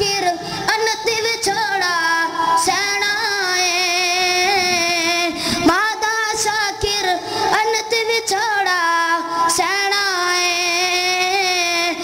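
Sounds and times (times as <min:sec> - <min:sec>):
boy singing unaccompanied: 0:00.0 - 0:12.0.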